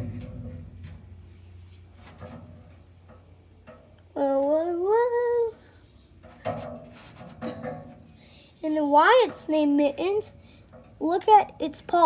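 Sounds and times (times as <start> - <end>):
low hum: 0.0 - 8.7
crickets chirring: 0.0 - 12.0.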